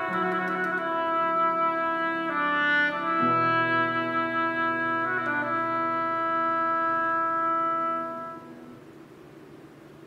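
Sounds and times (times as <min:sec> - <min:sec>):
oboe holding a long note: 0:00.0 - 0:08.8.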